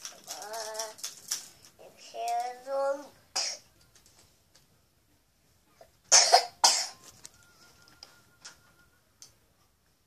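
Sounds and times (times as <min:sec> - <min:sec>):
child coughing into microphone: 0:03.3 - 0:03.7, 0:06.1 - 0:07.0.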